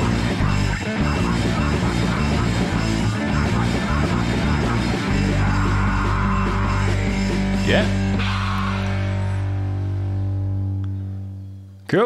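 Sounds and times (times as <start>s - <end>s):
punk band guitar and bass chord: 0.0s - 11.8s.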